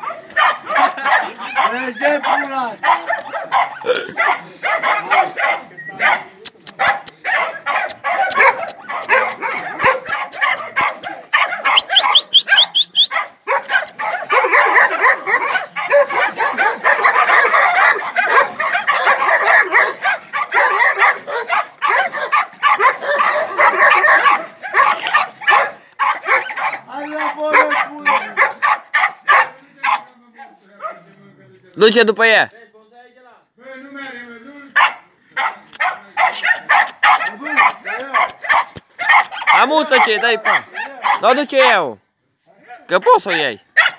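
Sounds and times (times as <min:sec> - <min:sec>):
dogs barking and yapping: 0:00.0 - 0:31.1, 0:34.8 - 0:41.8, 0:43.2 - 0:43.9.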